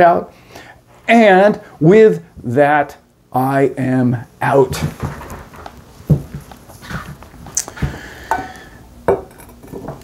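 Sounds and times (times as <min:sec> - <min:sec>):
clothing rustle: 0:04.7 - 0:08.1
soft thumps and knocks: 0:04.8 - 0:08.4.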